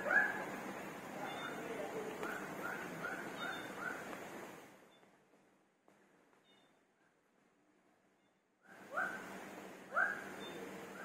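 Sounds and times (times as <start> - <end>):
animal yelping calls: 2.3 - 4.1, 9.9 - 11.0.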